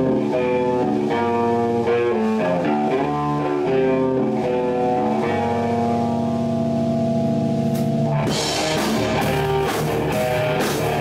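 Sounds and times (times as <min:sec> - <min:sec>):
electric guitar and bass chord: 0:00.0 - 0:11.0.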